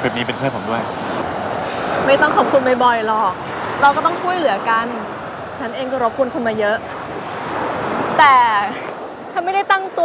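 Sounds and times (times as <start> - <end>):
sea surf washing onto shore: 0.0 - 10.0.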